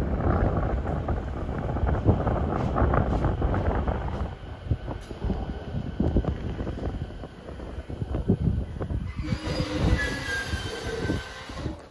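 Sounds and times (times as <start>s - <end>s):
wheels rumbling on rails: 0.0s - 11.9s
train brakes squealing: 9.0s - 11.9s.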